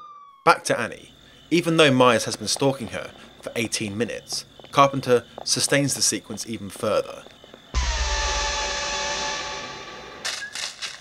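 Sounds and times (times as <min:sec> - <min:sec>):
low synthesizer horror sting: 0:07.8 - 0:10.3.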